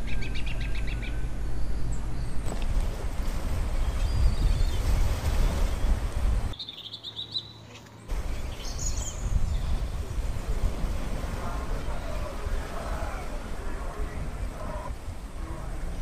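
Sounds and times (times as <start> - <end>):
low rumbling microphone noise: 0.0 - 6.6, 8.1 - 16.0
small birds chirping: 3.8 - 10.2.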